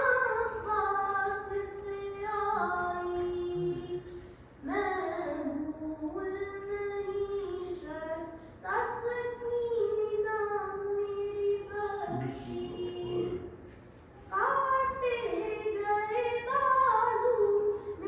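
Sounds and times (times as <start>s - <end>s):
child singing a lament: 0.0s - 13.5s, 14.3s - 18.0s.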